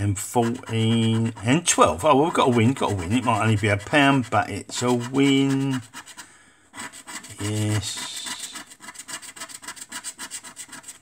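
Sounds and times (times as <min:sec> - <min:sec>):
scratchcard being scratched: 0:00.0 - 0:06.2, 0:06.8 - 0:11.0.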